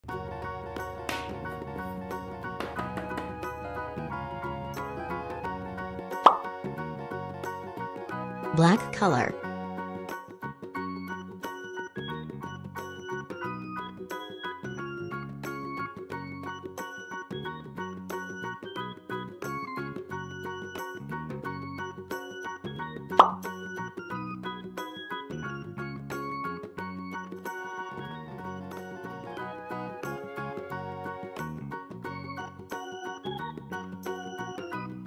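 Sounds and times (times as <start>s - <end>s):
children's background music: 0.0s - 35.0s
marker cap popping off: 6.2s - 6.5s, 23.2s - 23.5s.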